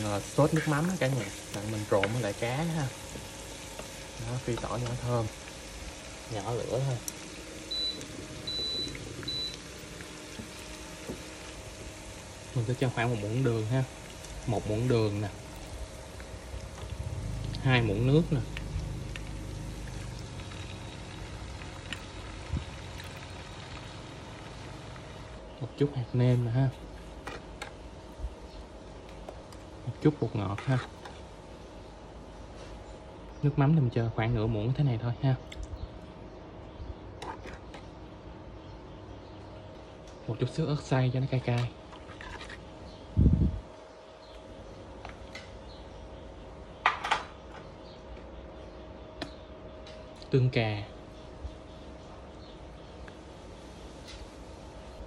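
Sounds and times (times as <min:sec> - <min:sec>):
faint steady hum: 0:00.0 - 0:55.0
low sizzle: 0:00.0 - 0:55.0.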